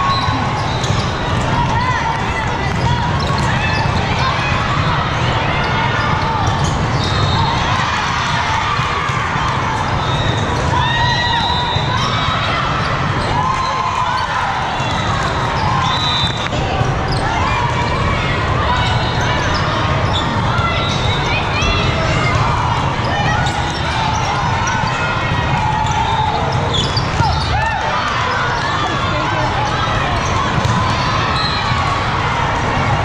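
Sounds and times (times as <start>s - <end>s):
crowd din: 0.0s - 33.0s
players shouting: 0.0s - 33.0s
volleyball hits: 30.0s - 31.3s.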